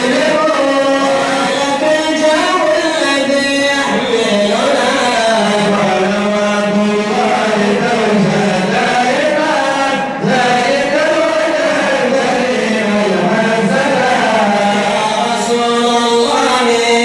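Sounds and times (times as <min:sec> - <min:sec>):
man chanting into a microphone: 0:00.0 - 0:17.0.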